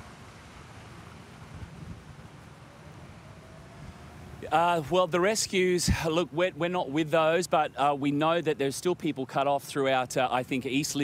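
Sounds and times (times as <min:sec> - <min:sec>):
wind on microphone: 0:01.4 - 0:02.3.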